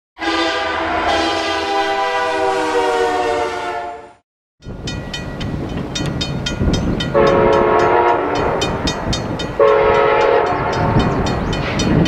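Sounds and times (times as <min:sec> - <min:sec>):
train horn chord: 0:00.2 - 0:04.2, 0:07.1 - 0:09.0, 0:09.6 - 0:11.2
low train rumble: 0:00.2 - 0:12.0.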